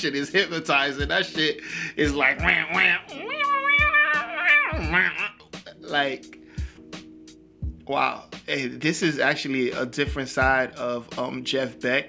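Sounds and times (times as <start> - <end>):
quiet background music: 0.0 - 12.0
man singing imitating guitar: 1.9 - 5.8.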